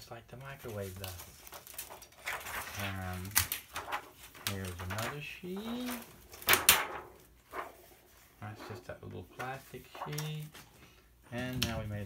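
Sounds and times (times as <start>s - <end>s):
plastic sheet clacking: 0.4s - 7.9s.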